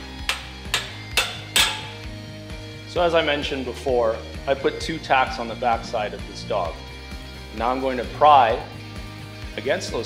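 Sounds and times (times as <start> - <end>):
background music: 0.0 - 10.0
hammer striking steel wedge: 0.2 - 2.1.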